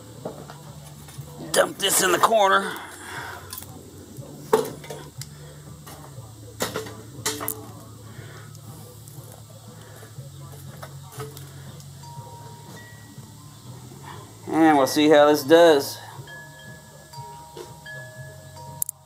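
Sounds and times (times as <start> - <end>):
low steady hum: 0.0 - 19.0
charcoal clattering: 4.4 - 7.9, 8.5 - 13.1.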